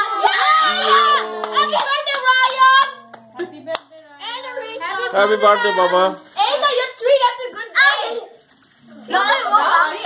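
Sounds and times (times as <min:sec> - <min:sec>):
children calling out: 0:00.0 - 0:03.1, 0:04.2 - 0:08.4, 0:09.1 - 0:10.0
hand claps: 0:00.7 - 0:03.9.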